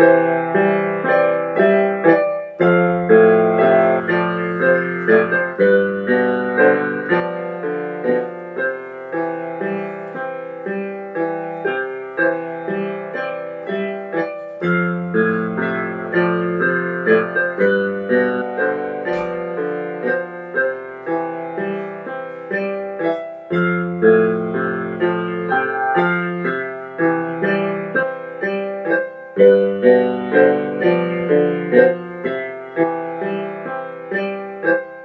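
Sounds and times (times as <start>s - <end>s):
electronic keyboard piano melody: 0.0s - 35.0s.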